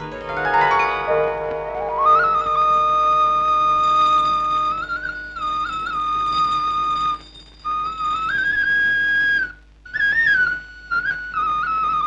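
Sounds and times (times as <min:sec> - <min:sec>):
solo wind instrument melody: 0:00.0 - 0:12.0.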